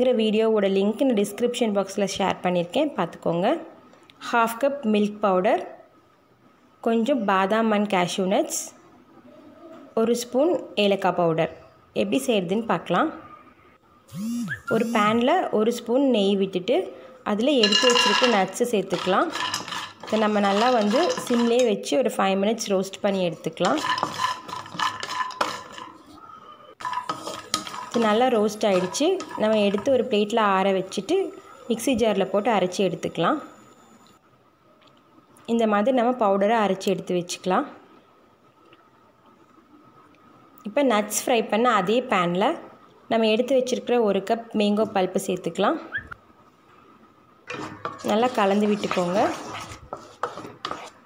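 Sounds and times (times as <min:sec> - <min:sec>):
nuts clicking against pan: 0:17.6 - 0:18.4
wooden spatula stirring in pan: 0:17.6 - 0:21.8, 0:23.1 - 0:26.2, 0:26.8 - 0:30.4, 0:47.5 - 0:51.0.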